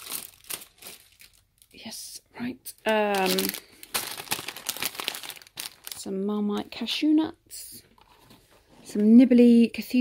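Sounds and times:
plastic packaging crinkling: 0.0s - 2.0s, 2.7s - 6.4s.

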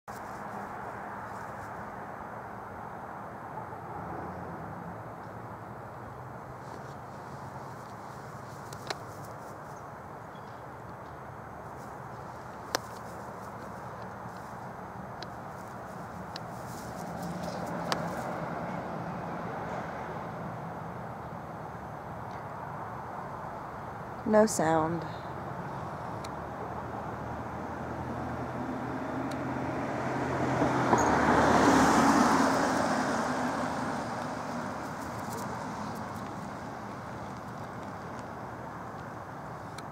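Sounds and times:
outdoor background noise: 0.0s - 39.9s.

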